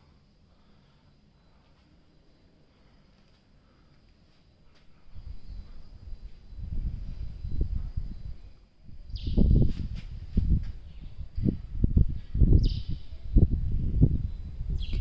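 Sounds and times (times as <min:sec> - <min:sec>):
wind buffeting microphone: 0:05.1 - 0:15.0.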